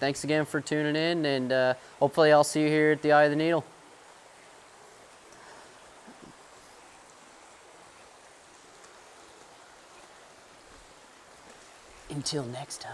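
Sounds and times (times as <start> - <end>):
stream flowing over rocks: 0.2 - 12.9.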